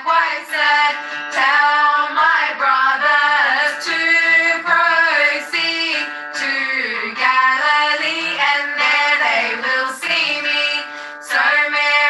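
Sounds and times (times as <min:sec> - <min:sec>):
girls singing a hymn: 0:00.0 - 0:12.0.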